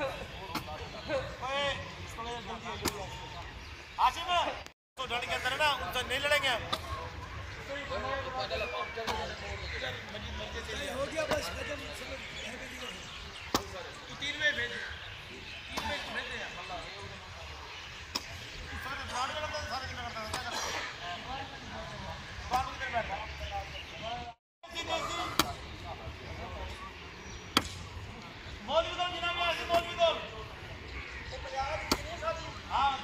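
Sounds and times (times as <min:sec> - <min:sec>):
sharp smack: 0:27.6 - 0:27.9.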